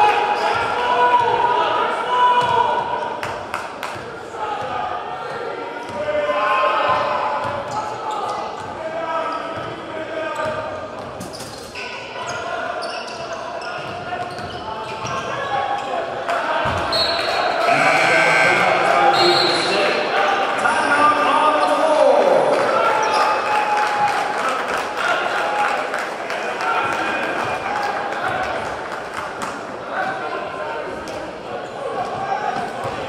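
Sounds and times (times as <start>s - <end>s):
crowd voices echoing: 11.8s - 33.0s.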